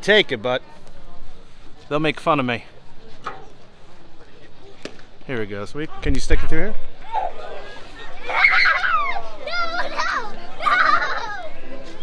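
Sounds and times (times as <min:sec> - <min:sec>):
children talking and calling out: 0:06.8 - 0:12.0.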